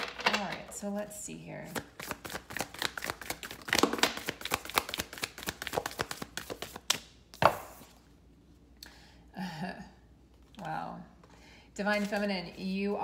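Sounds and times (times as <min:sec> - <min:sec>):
cards being shuffled: 0:01.7 - 0:07.9.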